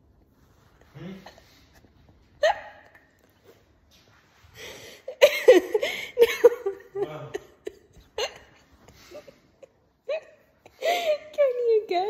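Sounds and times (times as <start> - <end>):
woman's stifled laughter: 5.1 - 11.1.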